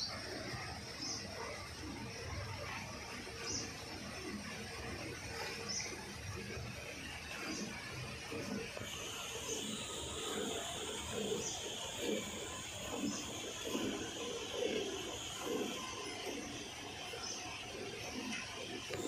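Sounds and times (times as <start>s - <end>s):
steady high hiss: 8.8s - 19.0s.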